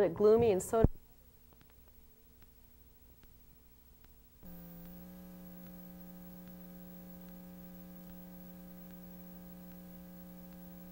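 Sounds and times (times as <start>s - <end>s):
electrical hum: 0.0s - 10.9s
faint hiss: 1.0s - 10.9s
faint ticks: 4.0s - 10.9s.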